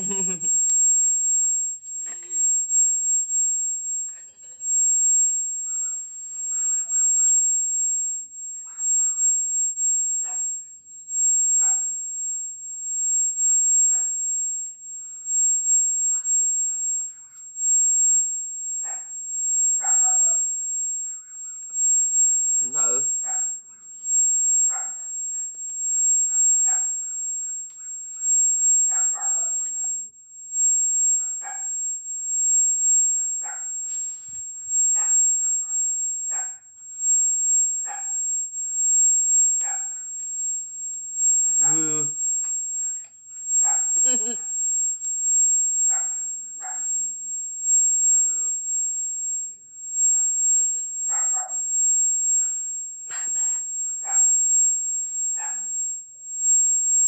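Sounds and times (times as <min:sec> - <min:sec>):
steady high-pitched whine: 0:00.0 - 0:57.0.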